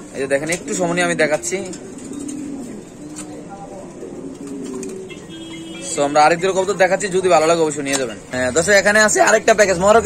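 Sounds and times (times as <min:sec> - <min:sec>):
pigeons cooing: 0:00.0 - 0:08.8.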